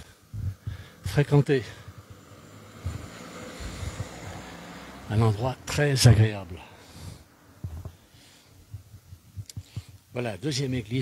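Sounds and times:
car driving slowly past: 0:00.8 - 0:08.0.

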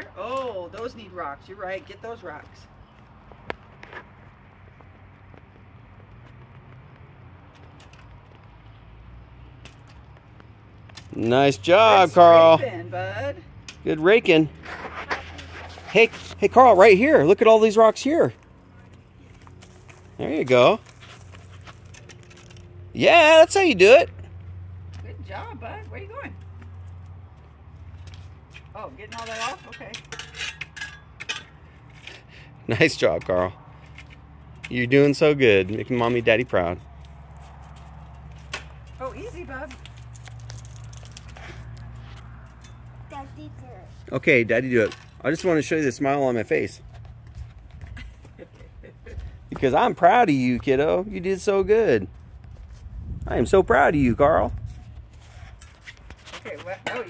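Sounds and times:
rake scraping through gravel: 0:14.6 - 0:17.1, 0:19.6 - 0:22.7.

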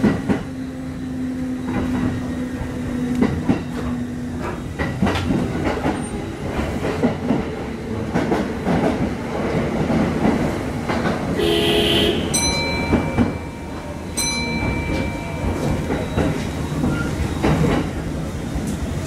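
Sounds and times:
wheels clacking over rail joints: 0:01.6 - 0:11.4, 0:12.3 - 0:19.0.

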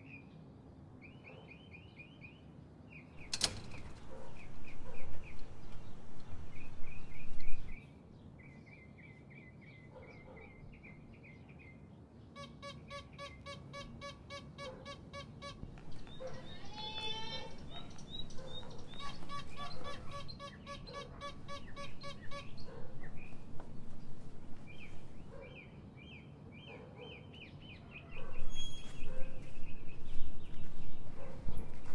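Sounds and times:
birds chirping: 0:01.0 - 0:31.9
fast repeated bird note: 0:12.4 - 0:22.7
warbling bird phrase: 0:12.4 - 0:22.7.

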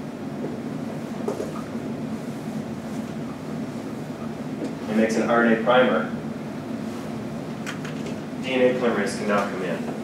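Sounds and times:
ventilation noise: 0:00.0 - 0:10.0.

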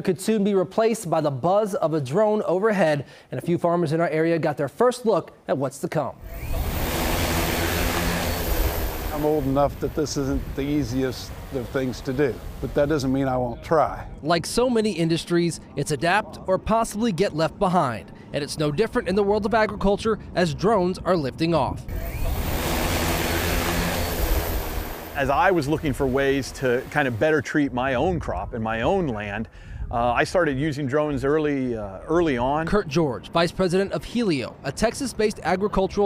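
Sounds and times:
drone propellers whirring: 0:06.2 - 0:13.4, 0:16.7 - 0:27.8.

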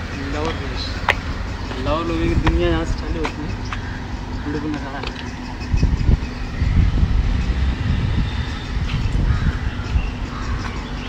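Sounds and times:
wind rumble on microphone: 0:01.0 - 0:04.4, 0:05.1 - 0:11.0.

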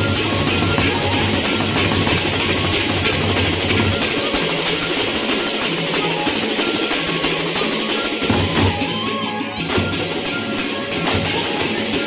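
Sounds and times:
large barrel drums: 0:00.0 - 0:12.0.

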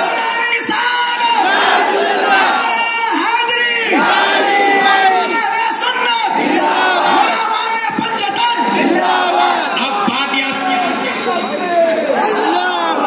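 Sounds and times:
crowd of men shouting: 0:00.0 - 0:13.0.

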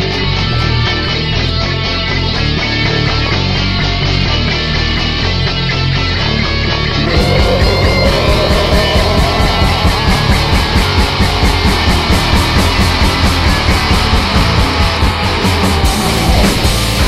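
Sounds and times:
electric guitar: 0:00.0 - 0:17.0
drums and cymbals fast beat: 0:07.1 - 0:17.0.

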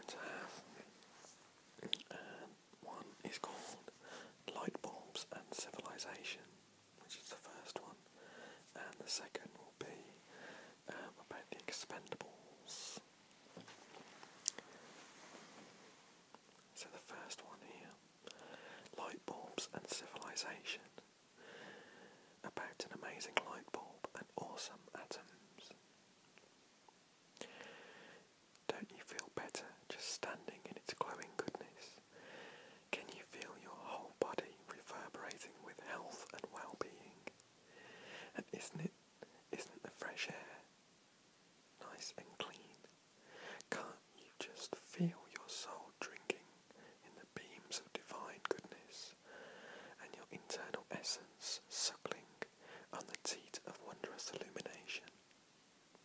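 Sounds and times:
man whispering: 0:00.0 - 0:08.0, 0:08.6 - 0:13.1, 0:16.7 - 0:21.0, 0:22.3 - 0:25.8, 0:28.6 - 0:32.3, 0:32.9 - 0:37.4, 0:38.3 - 0:40.7, 0:41.8 - 0:42.9, 0:43.6 - 0:55.2.

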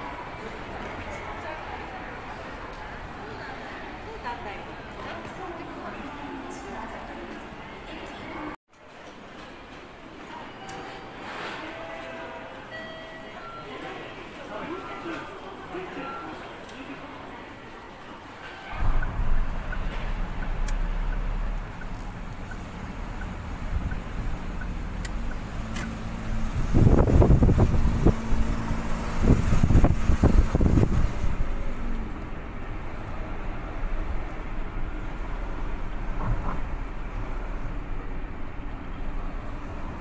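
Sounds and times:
street traffic rumble: 0:00.0 - 0:12.7, 0:13.4 - 0:40.0.

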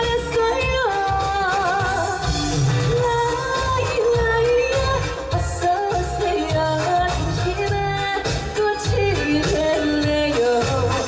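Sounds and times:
amplified instrumental accompaniment: 0:00.0 - 0:11.0
woman singing into microphone: 0:00.0 - 0:11.0.

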